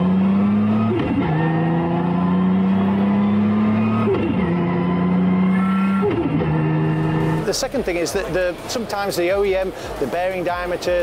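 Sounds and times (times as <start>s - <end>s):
gear upshifts: 0.0s - 7.7s
car engine accelerating: 0.0s - 7.8s.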